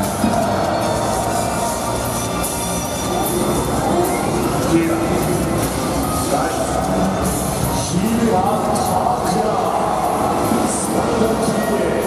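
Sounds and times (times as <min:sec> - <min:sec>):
stadium music and sound effects: 0:00.0 - 0:12.0.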